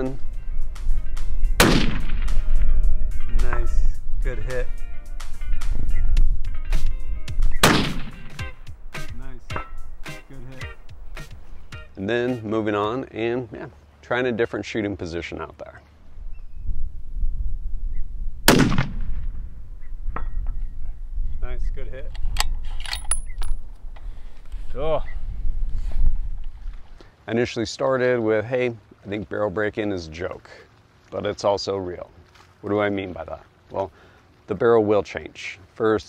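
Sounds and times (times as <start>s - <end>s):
rifle shot with echo: 1.6s - 2.6s, 7.5s - 8.4s, 18.4s - 19.6s.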